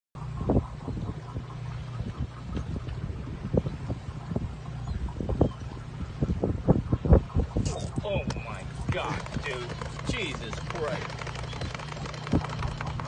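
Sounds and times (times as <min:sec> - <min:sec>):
boat engine humming: 0:00.2 - 0:13.0.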